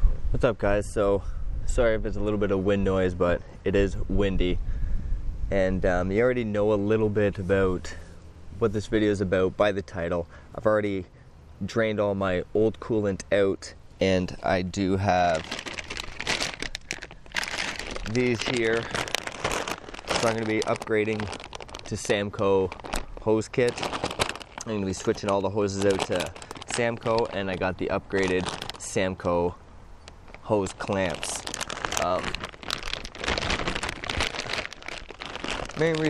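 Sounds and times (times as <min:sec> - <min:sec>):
plastic bag crinkling: 0:14.7 - 0:36.0.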